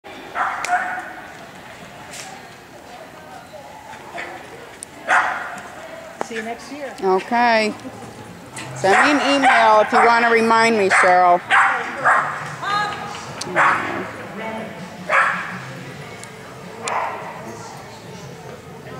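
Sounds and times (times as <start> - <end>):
small dog barking: 5.1 - 5.6, 13.5 - 14.0.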